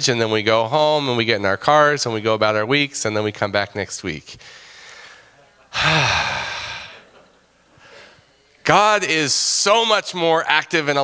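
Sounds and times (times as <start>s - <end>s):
man sighing: 5.7s - 7.1s.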